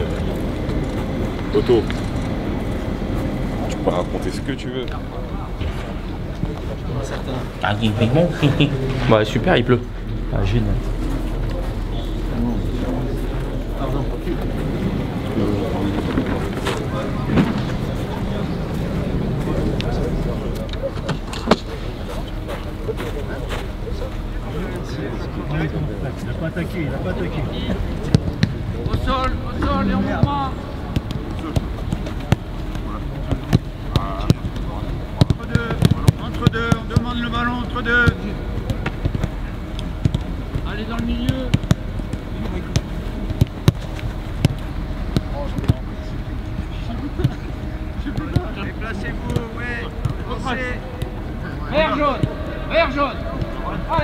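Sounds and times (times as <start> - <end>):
indistinct voices: 0.0 - 54.0
outdoor background noise: 0.0 - 54.0.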